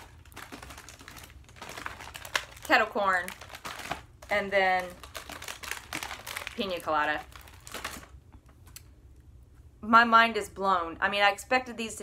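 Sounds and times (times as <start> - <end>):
snack packaging crinkling: 0.0 - 8.9.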